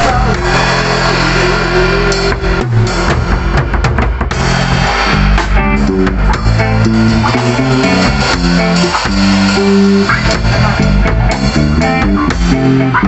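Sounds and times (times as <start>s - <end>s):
rock band playing live: 0.0s - 13.0s
busy drum hits: 2.1s - 13.0s.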